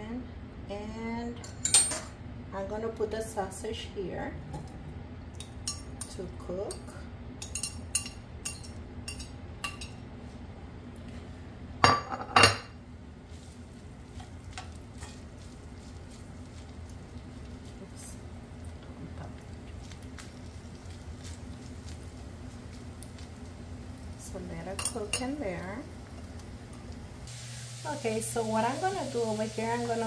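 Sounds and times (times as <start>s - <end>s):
low steady hum: 0.0s - 30.0s
metal tongs clinking on skillet: 1.4s - 2.1s, 5.4s - 10.0s, 24.6s - 25.7s.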